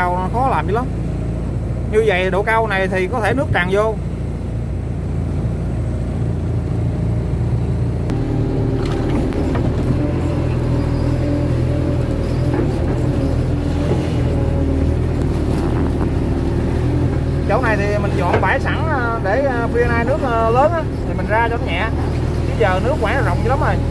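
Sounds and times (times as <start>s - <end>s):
excavator diesel engine running: 0.0s - 23.9s.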